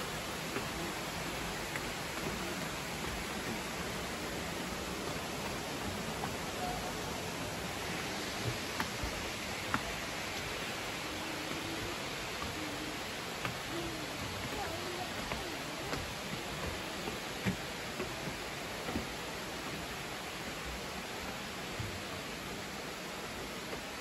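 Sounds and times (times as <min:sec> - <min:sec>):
flowing water rushing: 0:00.0 - 0:24.0
footsteps on wooden stairs: 0:00.3 - 0:22.0.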